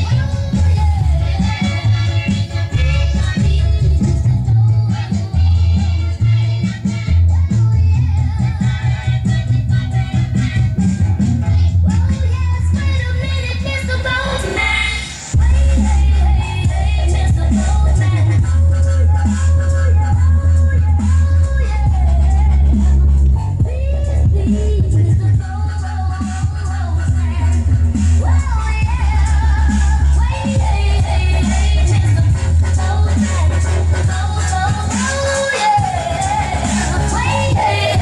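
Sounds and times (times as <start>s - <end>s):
music with singing and heavy bass: 0.0s - 38.0s.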